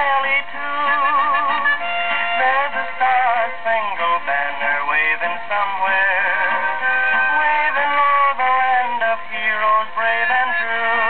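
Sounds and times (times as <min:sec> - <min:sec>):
country-western record playing: 0:00.0 - 0:11.0.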